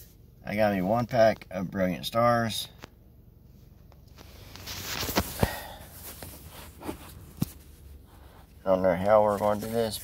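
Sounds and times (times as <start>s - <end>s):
phone handling rubbing: 4.6s - 7.8s.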